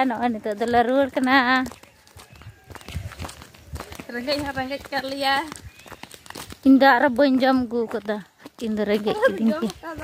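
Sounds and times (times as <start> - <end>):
soft taps and scuffs: 1.1 - 10.0.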